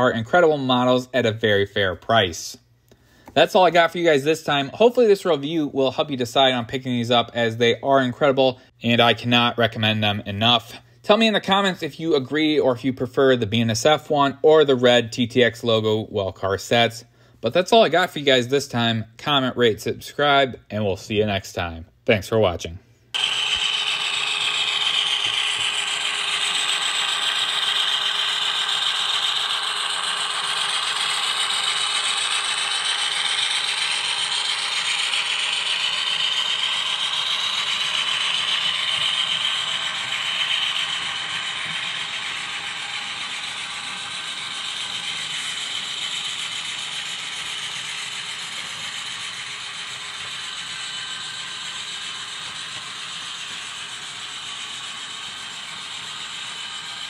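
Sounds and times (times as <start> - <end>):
model train wheels clattering on rails: 23.2 - 57.0.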